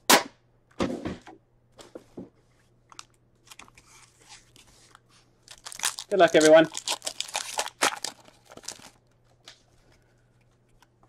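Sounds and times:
foil packs rustling and crinkling: 5.4s - 9.0s.

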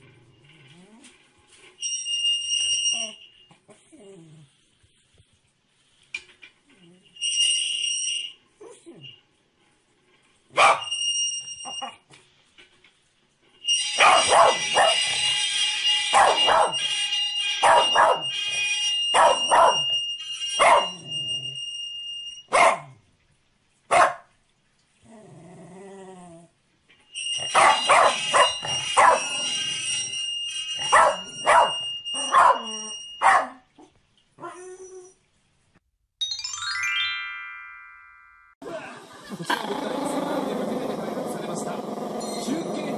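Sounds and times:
dog barking sharply: 10.6s - 10.9s, 22.5s - 23.0s, 23.9s - 24.3s, 27.6s - 29.2s, 33.2s - 33.6s
steady high beeping tone: 27.2s - 33.2s.

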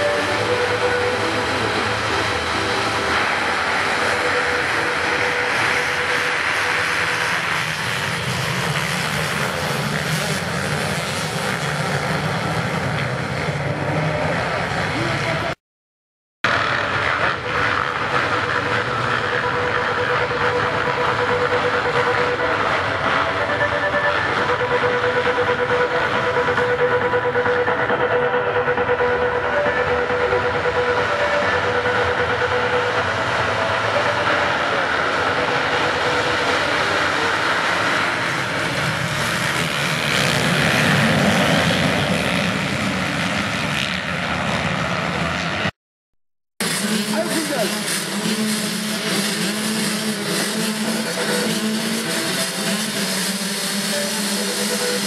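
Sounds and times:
motocross bikes revving: 0.0s - 15.6s, 16.5s - 28.0s, 29.5s - 45.7s, 46.6s - 55.0s.

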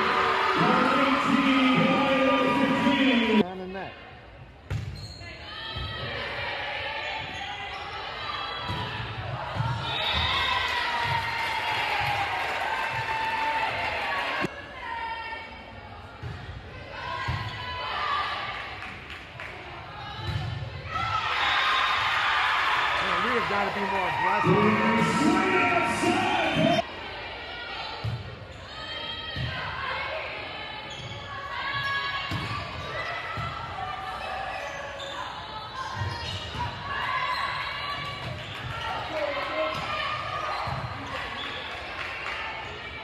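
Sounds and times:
voices in a large gym: 0.0s - 43.0s.

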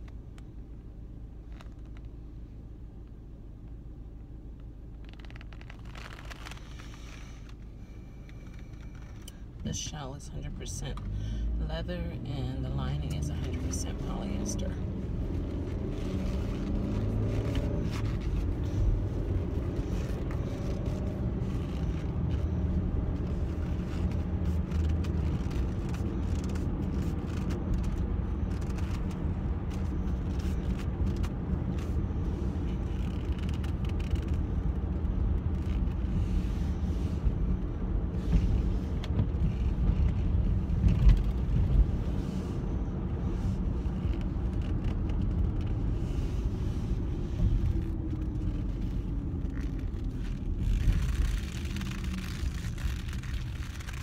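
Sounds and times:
leather gloves creaking on steering wheel: 0.0s - 11.6s, 12.2s - 54.0s
car road and engine rumble: 0.0s - 54.0s.

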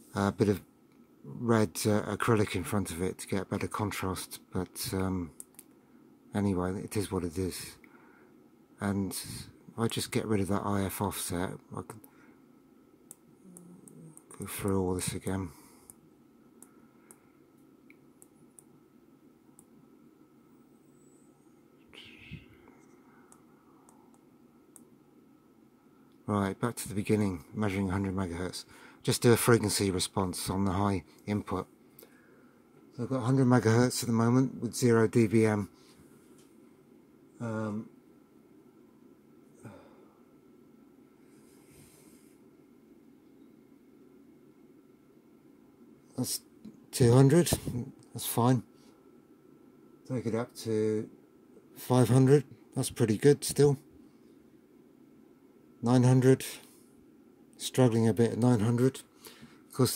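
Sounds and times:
faint steady hum: 0.0s - 59.9s
soft hiss: 0.0s - 59.9s
soft breath sounds: 7.7s - 8.5s, 12.0s - 12.6s, 15.4s - 17.5s, 21.3s - 24.2s, 28.6s - 29.0s, 31.8s - 32.8s, 41.1s - 42.5s, 59.0s - 59.7s.

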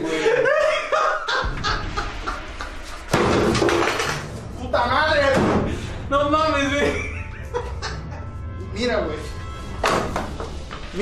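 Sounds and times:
loud bang: 1.3s - 6.2s.

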